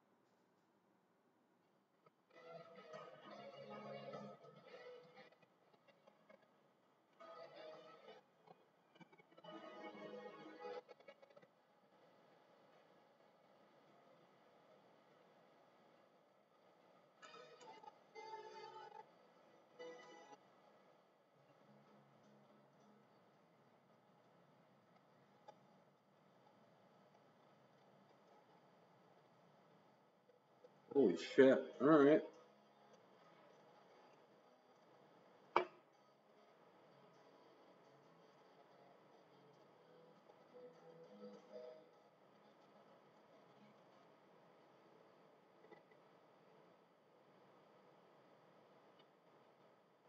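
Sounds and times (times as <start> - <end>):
faint steady hiss: 11.8 - 50.0.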